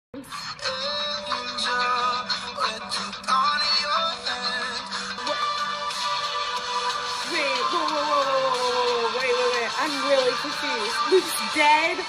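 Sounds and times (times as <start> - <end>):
pop song with singing: 0.2 - 12.0.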